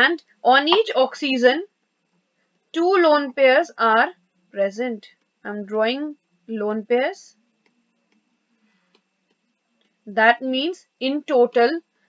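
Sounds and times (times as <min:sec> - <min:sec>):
stylus tapping on drawing tablet: 0:00.7 - 0:00.9.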